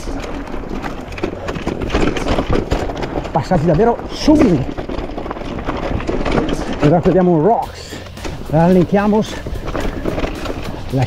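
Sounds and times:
bike knocking and rattling: 0.0 - 11.0
tyres rolling on loose dirt: 0.0 - 11.0.

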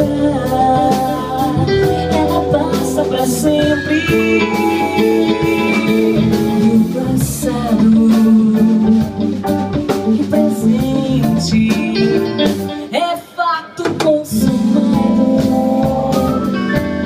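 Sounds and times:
live band playing: 0.0 - 17.0.

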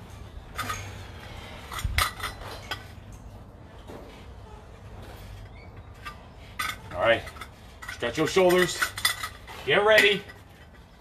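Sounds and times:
clinks and knocks: 5.6 - 11.0.

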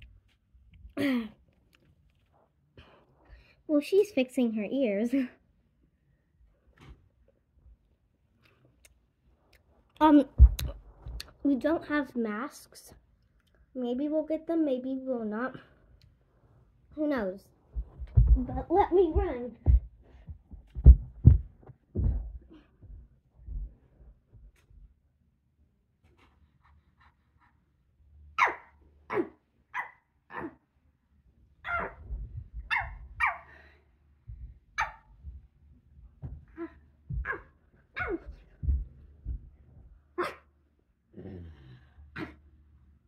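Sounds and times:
thuds on carpeted floor: 10.4 - 10.7, 17.7 - 24.8, 36.2 - 40.0.

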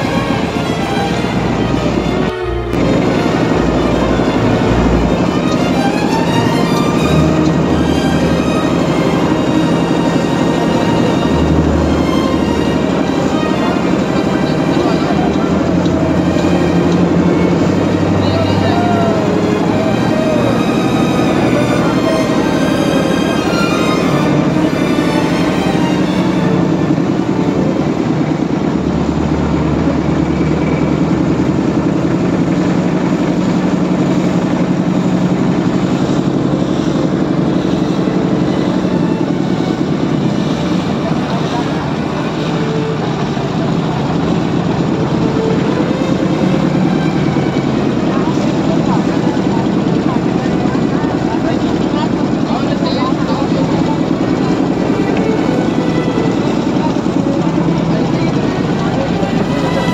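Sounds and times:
motorboat engine drone: 0.0 - 59.9
water rushing along hull: 0.0 - 59.9.

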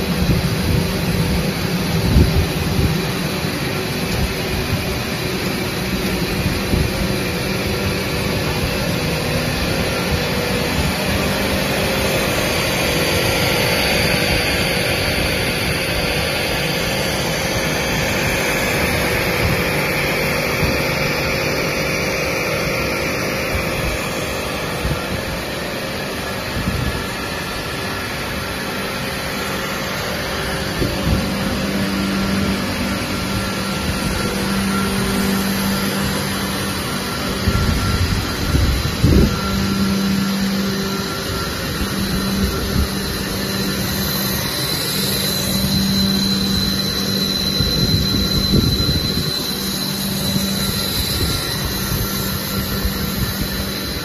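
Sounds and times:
constant low hum: 0.0 - 54.0
steady machine noise: 0.0 - 54.0.

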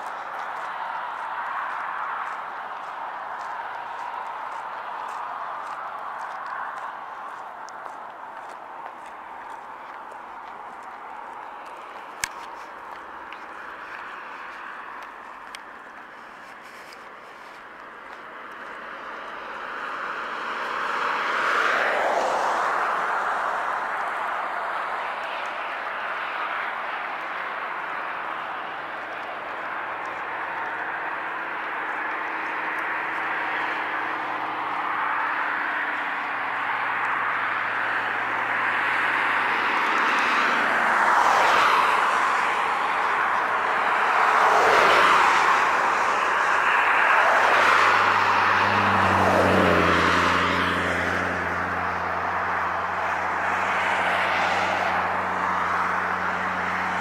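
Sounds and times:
rush of road traffic: 0.0 - 57.0.

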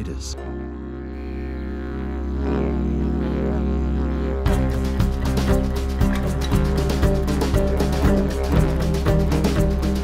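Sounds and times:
didgeridoo drone: 0.0 - 10.0.

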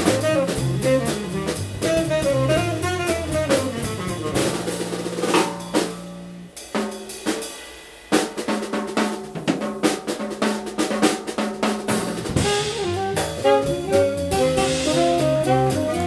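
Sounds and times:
jazz drum kit solo: 0.0 - 16.0.

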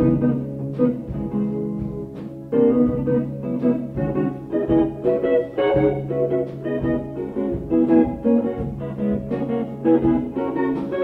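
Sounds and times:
cassette tape noise: 0.0 - 11.0
electric guitar: 0.0 - 11.0
jazz-rock band playing: 0.0 - 11.0.

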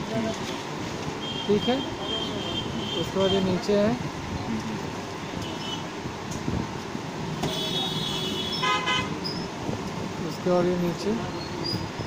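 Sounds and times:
background traffic noise: 0.0 - 12.0
vehicle horn tooting: 7.4 - 9.2.

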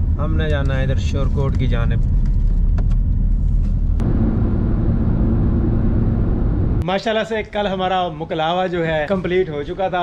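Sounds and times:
car cabin road and engine rumble: 0.0 - 6.8.

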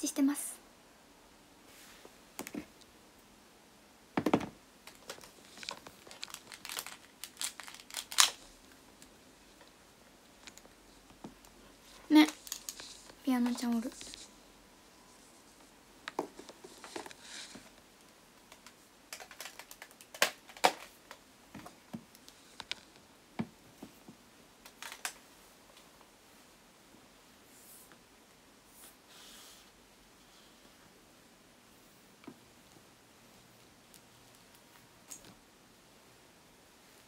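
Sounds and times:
handling rustles: 15.0 - 17.8.

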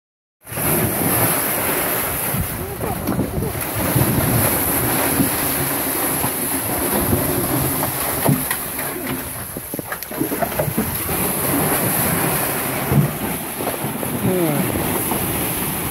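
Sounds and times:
liquid splashing and sloshing: 0.5 - 15.9.

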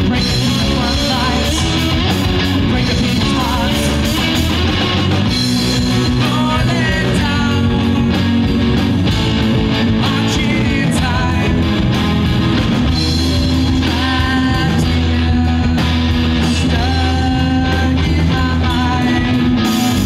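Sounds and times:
drum kit: 0.0 - 20.0
electric bass: 0.0 - 20.0
electric guitar: 0.0 - 20.0.

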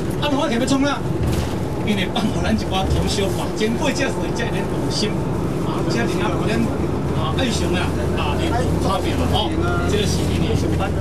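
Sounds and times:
steady low rumble: 0.0 - 11.0
man speaking: 1.9 - 11.0.

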